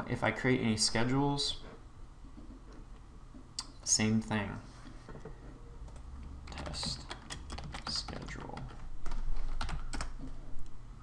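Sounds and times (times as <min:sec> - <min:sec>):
typing on computer keyboard: 0:05.9 - 0:10.4.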